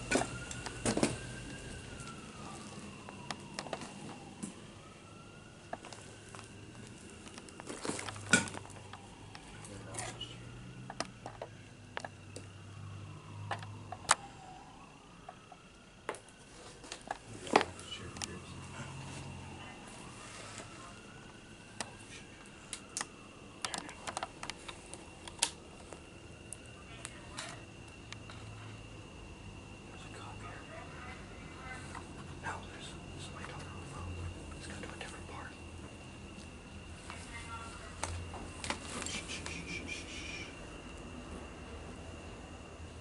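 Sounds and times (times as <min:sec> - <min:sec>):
distant emergency siren wailing: 0:00.0 - 0:43.0
faint high whine: 0:00.0 - 0:43.0.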